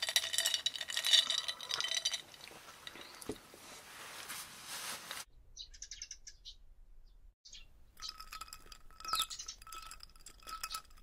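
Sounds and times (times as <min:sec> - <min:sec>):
birds chirping: 0:05.3 - 0:08.4, 0:09.0 - 0:09.7.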